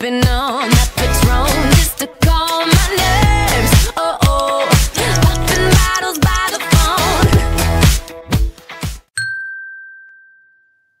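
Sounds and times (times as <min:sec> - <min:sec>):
bell-like ding: 0:09.2 - 0:11.0.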